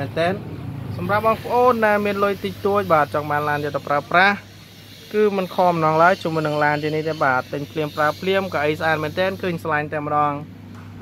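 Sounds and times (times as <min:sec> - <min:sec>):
person speaking: 0:00.0 - 0:04.5, 0:05.1 - 0:10.5.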